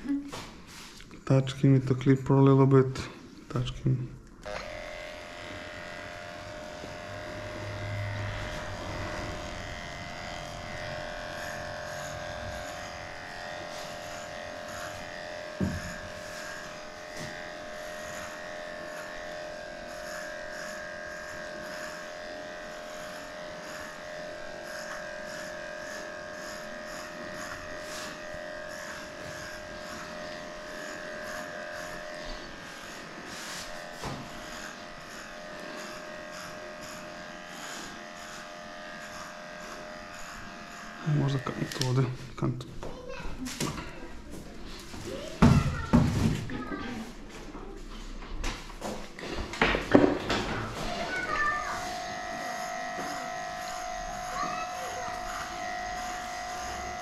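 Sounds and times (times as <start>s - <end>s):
electric dog clipper humming: 4.2s - 47.4s, 48.4s - 57.0s.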